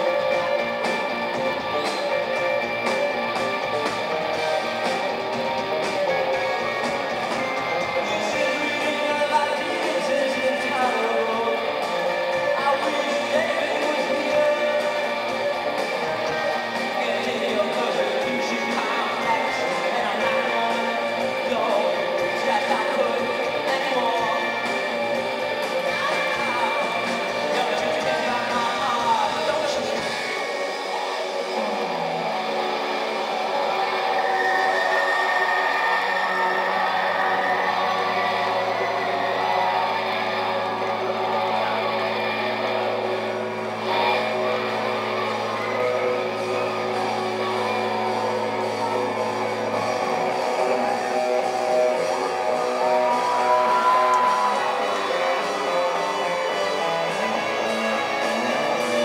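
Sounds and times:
rock band playing live: 0.0s - 59.0s.

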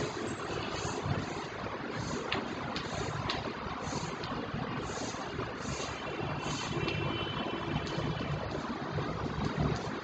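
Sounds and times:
chalk tapping and scraping on blackboard: 0.0s - 8.6s
steady rumbling background noise: 0.0s - 10.0s.

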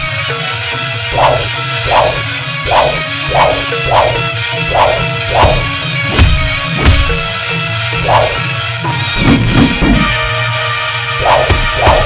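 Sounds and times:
whip-like strike effects: 1.1s - 7.2s, 11.2s - 12.0s.

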